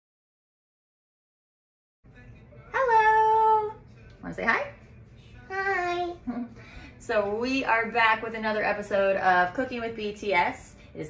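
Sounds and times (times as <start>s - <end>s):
child's high-pitched vocal sound: 5.5s - 6.2s.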